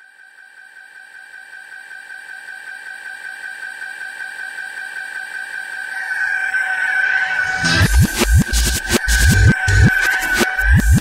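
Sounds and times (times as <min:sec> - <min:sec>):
high held synth tone: 0:05.9 - 0:11.0.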